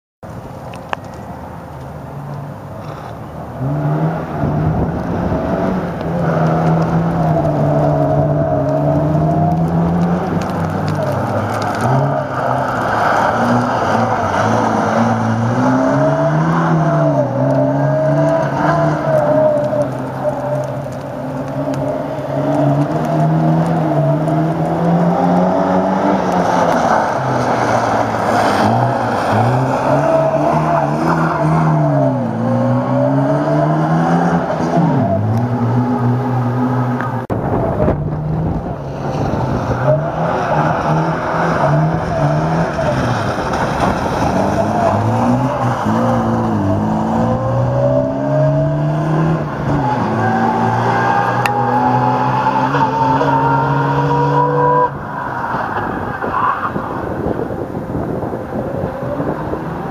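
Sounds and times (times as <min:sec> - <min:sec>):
distant car engine: 0:00.4 - 0:59.9
car engine revving hard: 0:03.6 - 0:20.6, 0:21.4 - 0:55.1.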